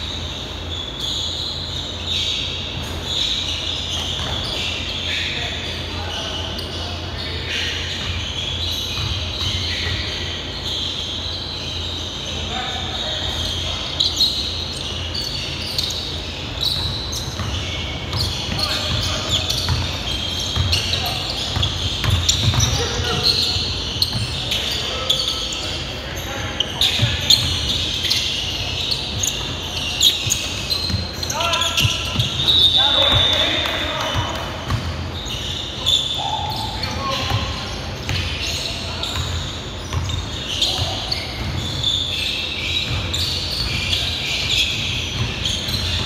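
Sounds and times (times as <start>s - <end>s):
basketball bouncing on hardwood: 21.5s - 22.8s.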